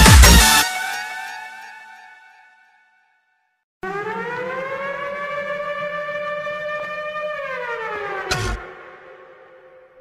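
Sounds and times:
siren-like electronic tone: 0:03.8 - 0:10.0.

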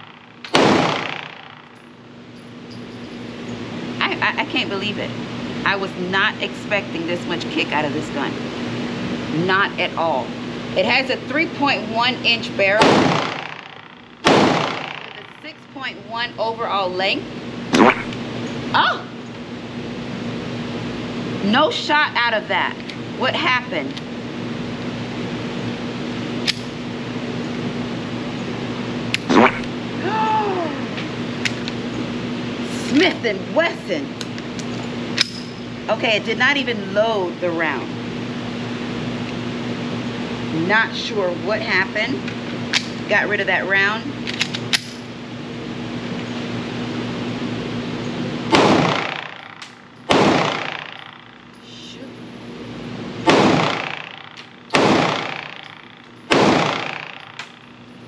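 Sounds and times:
ventilation hum: 0:00.0 - 0:58.0
pistol shots echoing indoors: 0:00.4 - 0:01.8, 0:12.8 - 0:15.3, 0:48.5 - 0:51.4, 0:53.2 - 0:57.7
pistol handling clicks: 0:26.4 - 0:26.7, 0:44.2 - 0:45.0.

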